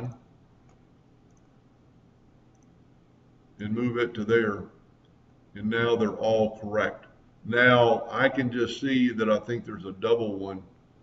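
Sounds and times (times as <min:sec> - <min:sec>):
faint computer mouse clicks: 0:00.6 - 0:01.5, 0:02.5 - 0:02.8.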